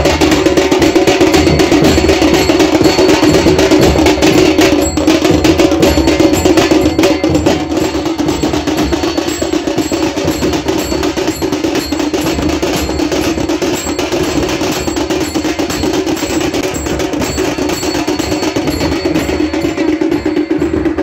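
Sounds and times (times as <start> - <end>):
drums playing rapid beat: 0.0 - 21.0.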